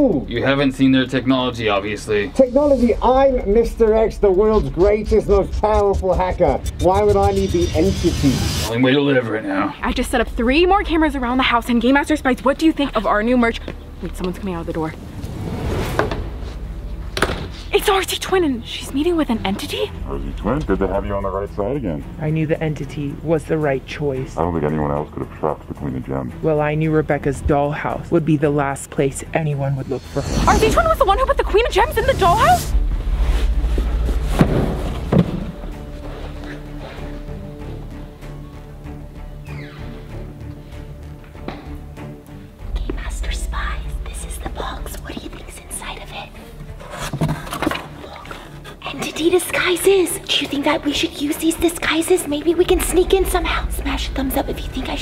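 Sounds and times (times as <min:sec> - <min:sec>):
background music with deep bass drone: 0:00.0 - 0:55.0
low steady rumble: 0:02.4 - 0:08.7.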